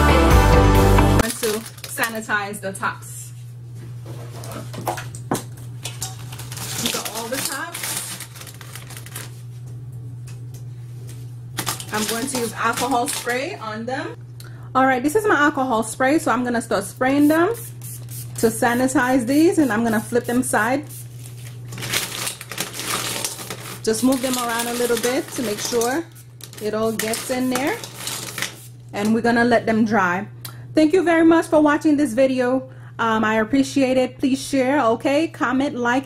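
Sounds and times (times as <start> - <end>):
plastic caps rattling in metal bowl: 1.2 - 2.3, 5.8 - 9.3, 11.6 - 13.6, 21.6 - 29.2
low steady hum: 1.2 - 36.0
plastic tops clattering: 21.7 - 28.6.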